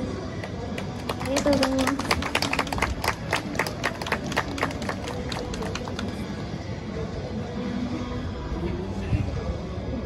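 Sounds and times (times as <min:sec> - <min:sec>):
street background noise: 0:00.0 - 0:10.0
audience clapping: 0:00.4 - 0:06.2.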